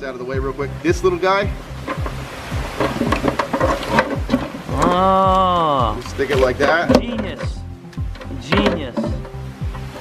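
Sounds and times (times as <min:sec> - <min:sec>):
background music with steady beat: 0:00.0 - 0:10.0
power cord rustling against plastic bowl: 0:01.8 - 0:04.9.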